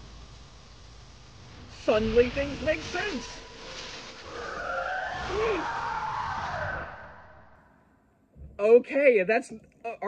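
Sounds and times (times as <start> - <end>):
screeching monster roar: 4.2 - 7.6.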